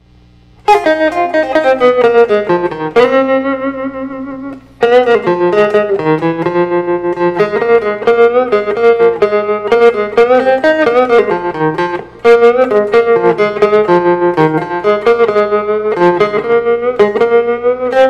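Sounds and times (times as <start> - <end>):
electric guitar blues solo: 0.6 - 18.0.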